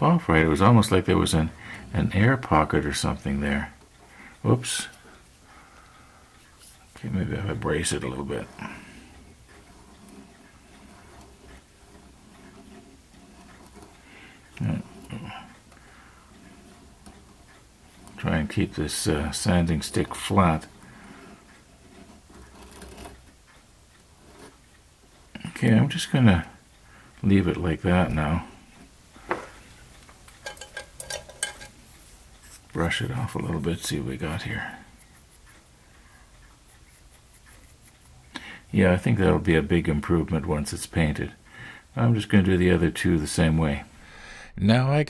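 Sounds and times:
hobby tools clicking and ticking: 1.5 - 28.2, 29.6 - 38.8
sanding stick scratching plastic: 32.4 - 38.3.

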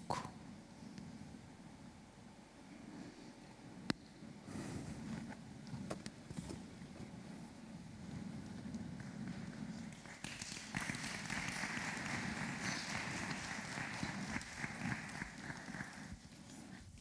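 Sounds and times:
audience applauding: 9.0 - 16.6.

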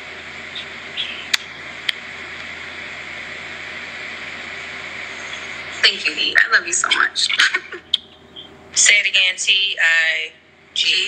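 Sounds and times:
low room noise hiss: 0.0 - 11.0.

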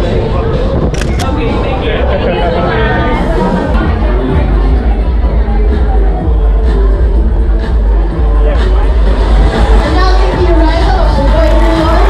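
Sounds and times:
crowd chatter: 0.0 - 12.0
camera shutter clicking: 0.9 - 1.3.

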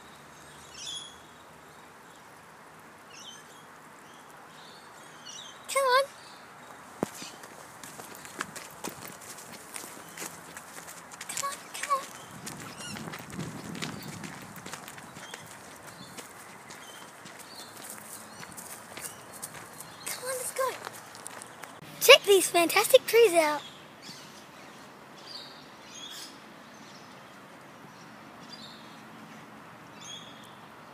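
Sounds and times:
footsteps on dirt path: 6.8 - 21.8.

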